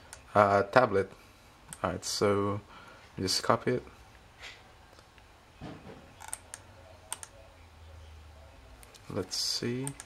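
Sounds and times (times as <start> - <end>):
computer keys clicking: 6.2 - 7.4, 9.8 - 10.0.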